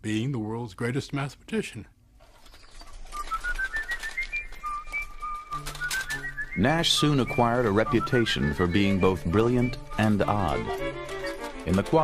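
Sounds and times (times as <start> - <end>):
whistled melody: 2.6 - 12.0.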